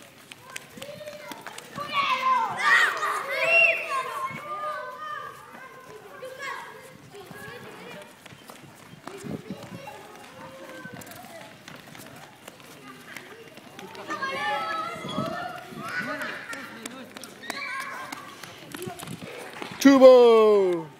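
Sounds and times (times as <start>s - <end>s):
children and adults chattering: 0.0s - 20.9s.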